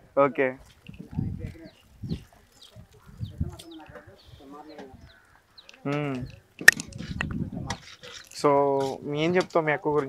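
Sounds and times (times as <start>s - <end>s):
faint farmyard animal calls: 2.9s - 6.5s.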